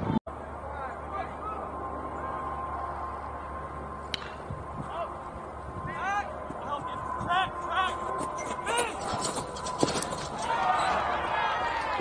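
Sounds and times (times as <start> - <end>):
bat crack: 4.1 - 4.5.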